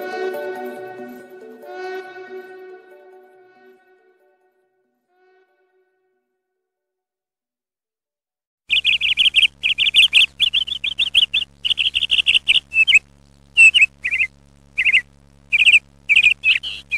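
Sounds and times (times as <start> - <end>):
bird chirping: 8.7 - 13.0, 13.6 - 16.9
steady low hum: 8.7 - 16.9.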